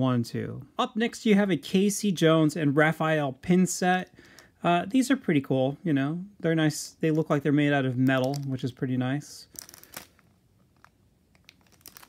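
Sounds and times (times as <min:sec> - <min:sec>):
plastic sleeve crinkling: 0:07.8 - 0:12.0.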